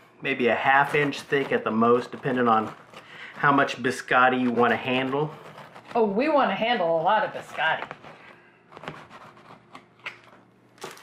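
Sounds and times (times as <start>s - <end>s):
knife cutting crunchy biscuit: 0.8s - 6.0s.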